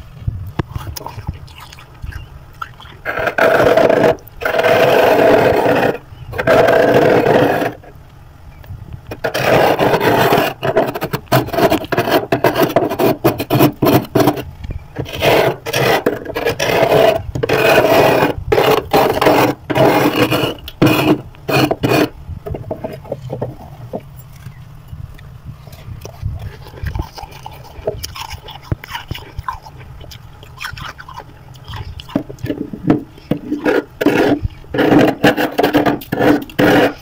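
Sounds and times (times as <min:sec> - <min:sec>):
metal spoon scraping frost: 0:15.0 - 0:22.1, 0:30.8 - 0:37.0.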